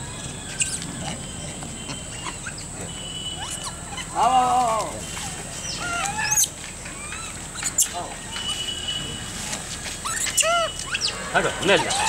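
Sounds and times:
monkey squeaks and chirps: 0:00.4 - 0:04.2, 0:05.6 - 0:08.6, 0:10.0 - 0:11.2.

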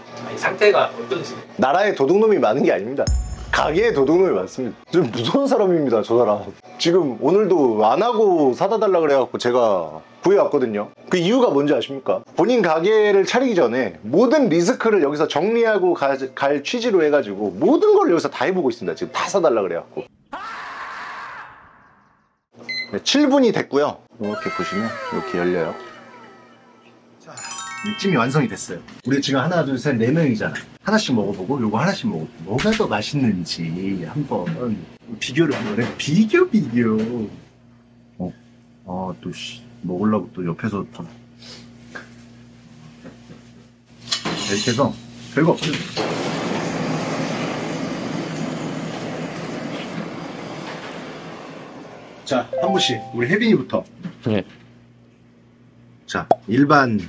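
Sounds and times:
marmot scream: 0:20.3 - 0:22.3, 0:24.2 - 0:26.9
brief high tone: 0:25.0 - 0:28.7, 0:52.5 - 0:53.5
kitchen torch hissing: 0:45.7 - 0:52.3.

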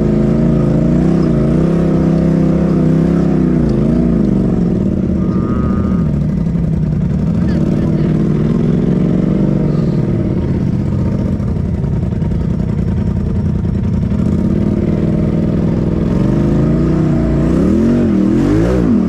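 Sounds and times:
utility vehicle engine revving: 0:00.0 - 0:19.0.

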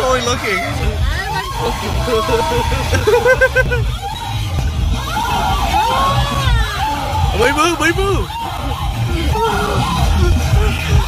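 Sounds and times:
people's voices: 0:00.0 - 0:11.0
laughter: 0:01.7 - 0:04.0.

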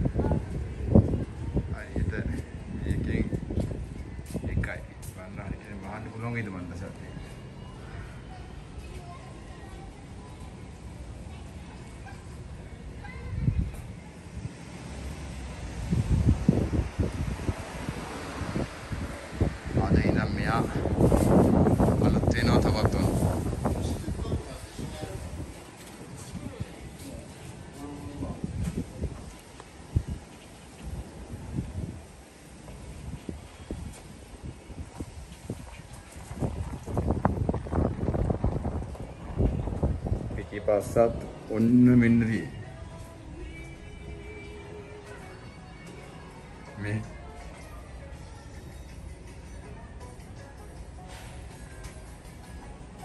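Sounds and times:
wind buffeting microphone: 0:00.0 - 0:06.1, 0:12.8 - 0:41.8
footsteps: 0:20.6 - 0:31.1.

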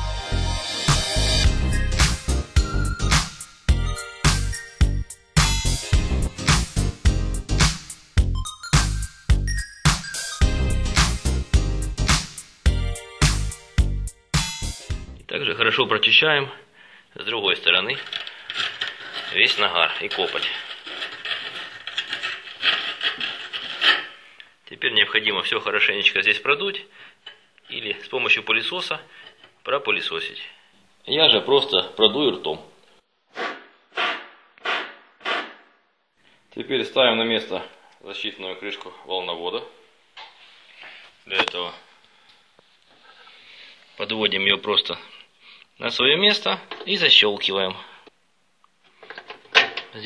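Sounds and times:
sandpaper scratching on metal: 0:18.0 - 0:24.3, 0:33.4 - 0:35.6.

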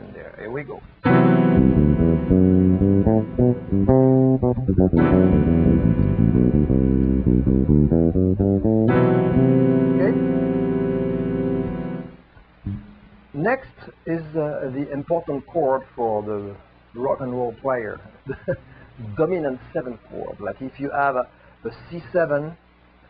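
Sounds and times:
bass guitar scale line: 0:00.8 - 0:13.4, 0:18.3 - 0:19.5
sustained chord struck: 0:01.0 - 0:13.3.

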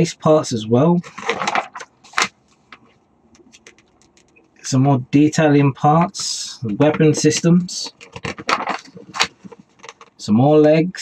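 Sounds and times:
paper crackle: 0:01.0 - 0:02.7
paper pages turning: 0:01.0 - 0:04.4.

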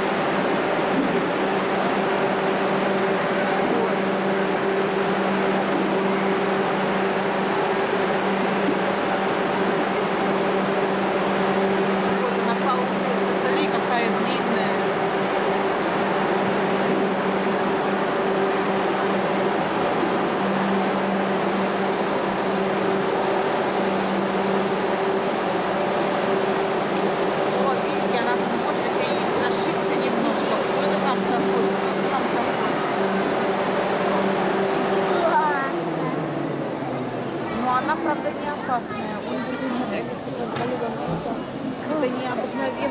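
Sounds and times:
ventilation unit humming: 0:00.0 - 0:42.9.

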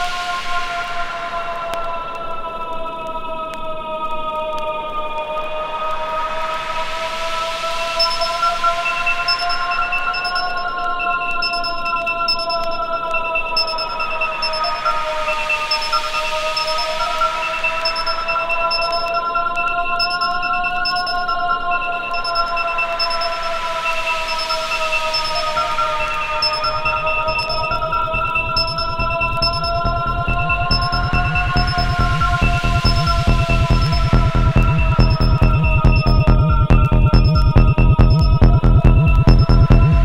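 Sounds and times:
rising noise sweep: 0:24.7 - 0:40.0
rising synth chord: 0:25.4 - 0:40.0.

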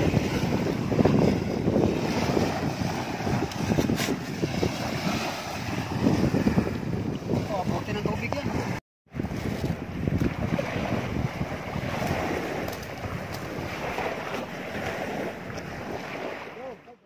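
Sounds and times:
wind buffeting microphone: 0:00.0 - 0:16.8
small surf on beach: 0:00.0 - 0:17.0.

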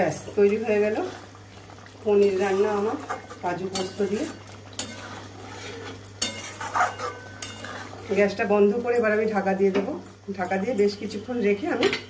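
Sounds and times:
spatula stirring thick gravy: 0:00.4 - 0:08.1
spatula clinking against pan: 0:06.2 - 0:07.7.

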